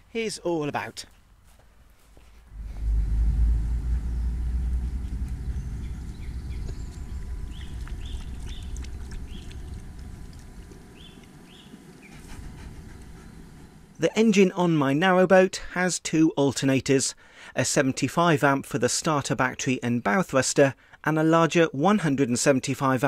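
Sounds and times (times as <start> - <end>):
low rumble: 2.4 - 14.1.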